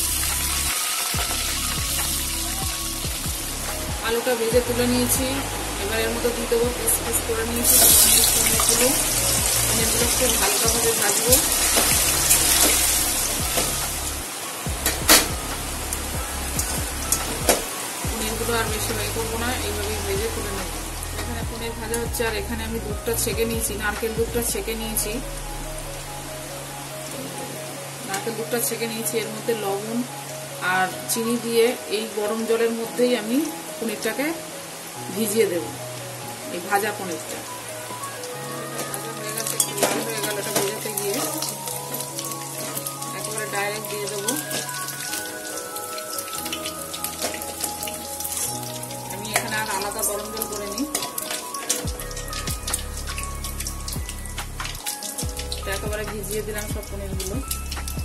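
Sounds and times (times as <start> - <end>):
paneer sizzling in hot oil: 0.0 - 3.9, 5.0 - 21.9, 36.6 - 56.3
background music with bass beat: 0.0 - 26.9, 51.8 - 58.0.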